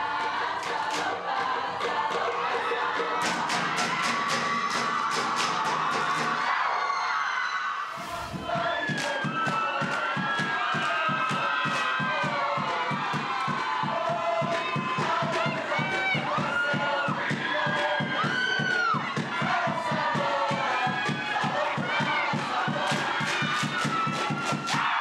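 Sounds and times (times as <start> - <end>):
group singing and shouting: 0.0 - 25.0.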